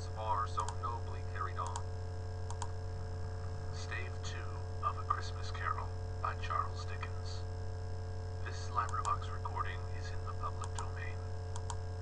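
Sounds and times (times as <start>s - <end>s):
low mains hum: 0.0s - 12.0s
faint audiobook narration: 3.4s - 7.6s, 8.4s - 11.3s
light click: 11.5s - 11.8s.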